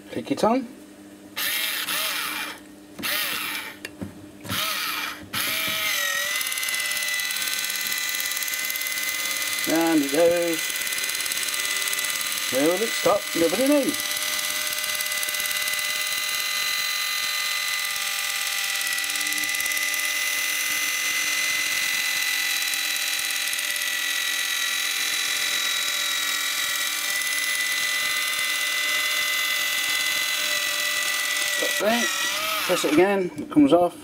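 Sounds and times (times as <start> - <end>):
electric can opener whirring: 1.4 - 33.2.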